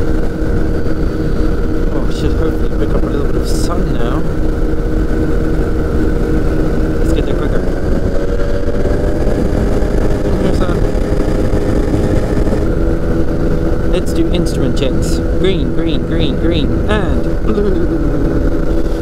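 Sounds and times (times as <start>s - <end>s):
aircraft engine and propeller droning: 0.0s - 19.0s
heavy wind rush: 0.0s - 19.0s.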